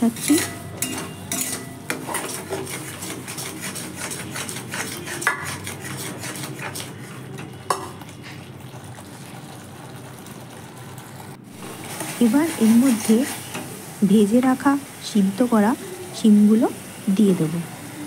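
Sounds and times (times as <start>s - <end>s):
metal spatula scraping wok: 0.0s - 14.3s.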